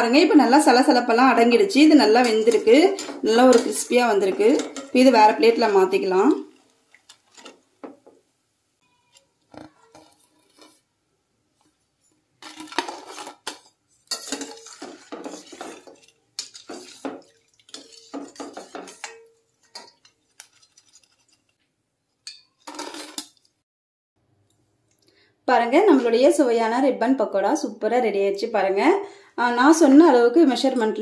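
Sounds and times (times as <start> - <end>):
metal ladle scraping a steel pan: 1.8 - 7.6, 9.5 - 10.9, 12.4 - 21.6.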